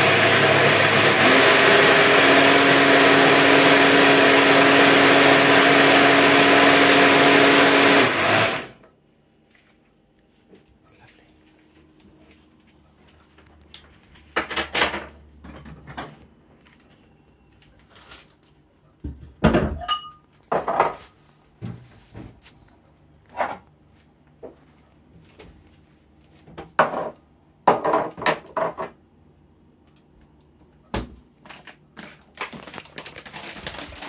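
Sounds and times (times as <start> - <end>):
dishes and utensils clattering: 13.8 - 16.2, 19.5 - 21.1.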